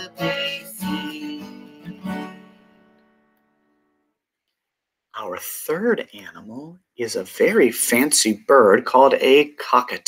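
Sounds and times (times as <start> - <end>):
acoustic guitar chord ringing: 0.0 - 4.2.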